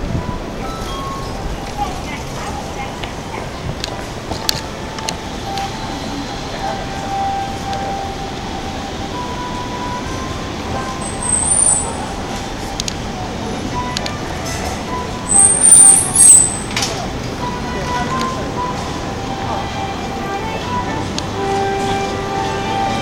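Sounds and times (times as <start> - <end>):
faint steady tones: 0.0 - 23.0
din of voices: 1.4 - 11.3, 16.1 - 21.9
high-pitched squeals: 4.6 - 23.0.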